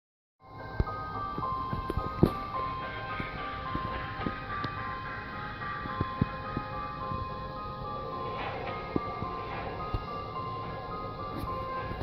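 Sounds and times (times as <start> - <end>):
melody of held tones: 0.4 - 12.0.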